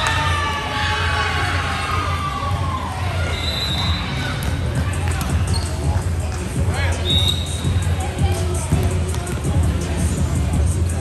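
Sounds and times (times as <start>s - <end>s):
sneaker squeaks: 5.2s - 6.0s, 7.0s - 7.8s.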